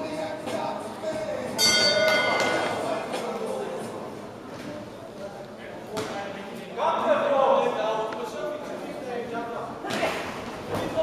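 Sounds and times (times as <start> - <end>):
boxing ring bell: 1.6 - 2.8.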